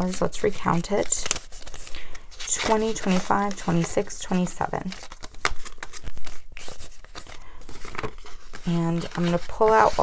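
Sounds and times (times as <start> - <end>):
paper money rustling: 0.0 - 10.0.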